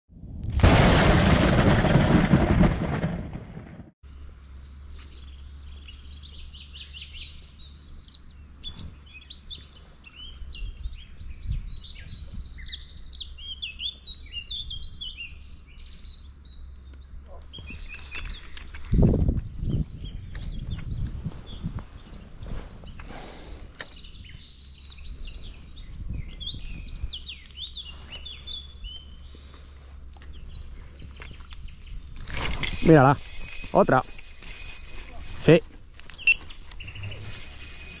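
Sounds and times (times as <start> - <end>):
small birds singing: 4.0 - 38.0.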